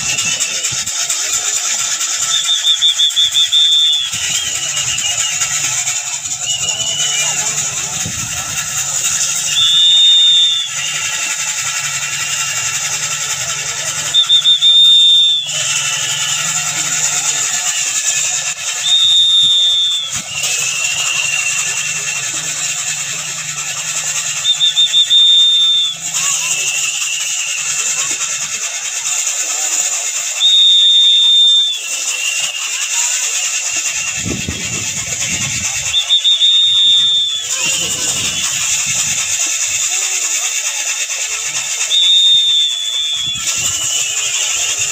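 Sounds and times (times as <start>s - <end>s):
wooden mill squealing: 0.0s - 44.9s.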